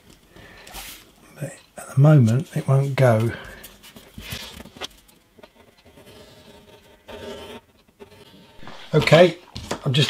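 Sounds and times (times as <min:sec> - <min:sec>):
paper rustling: 0:03.0 - 0:06.2, 0:08.2 - 0:10.0.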